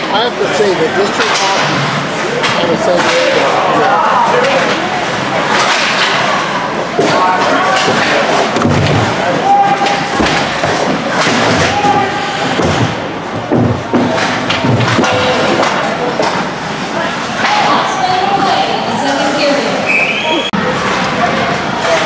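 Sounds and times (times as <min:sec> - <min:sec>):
hockey sticks clacking: 0:01.0 - 0:16.5
thuds against hockey boards: 0:07.0 - 0:16.4.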